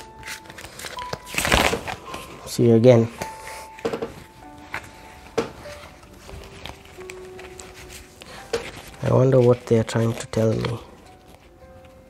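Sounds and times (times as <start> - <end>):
soft music of long held notes: 0.0 - 12.0
cards clicking and tapping: 0.2 - 2.3, 3.2 - 5.7, 6.5 - 12.0.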